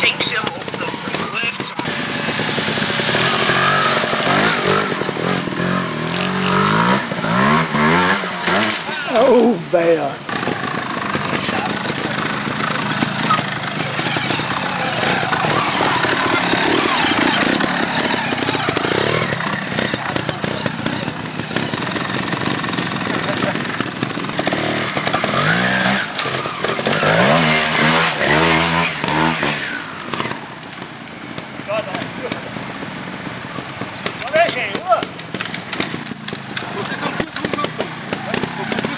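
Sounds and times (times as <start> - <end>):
motorcycle engines revving: 0.0 - 38.9.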